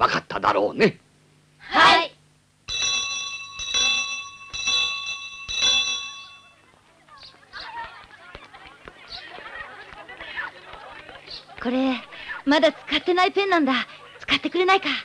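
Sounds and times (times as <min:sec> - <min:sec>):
school bell ringing: 0:02.7 - 0:06.6
faint murmur of children's voices: 0:06.5 - 0:12.1.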